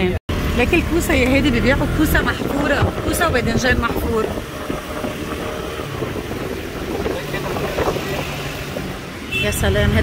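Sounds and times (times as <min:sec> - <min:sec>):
motorcycle engine at low speed: 0:00.0 - 0:10.0
wind noise on microphone: 0:01.8 - 0:09.1.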